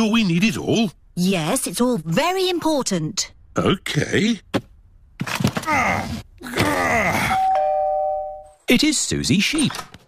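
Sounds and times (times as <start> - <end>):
person groaning with effort: 5.6 - 7.5
ding-dong doorbell: 7.4 - 8.6.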